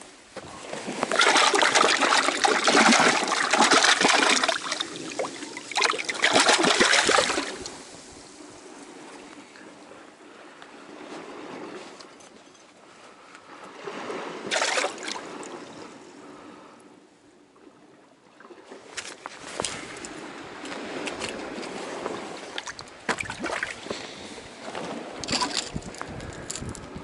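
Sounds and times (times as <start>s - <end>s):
fish splashing in water: 0.8s - 7.8s, 14.4s - 15.4s
water trickling among rocks: 0.9s - 7.9s, 25.2s - 26.9s.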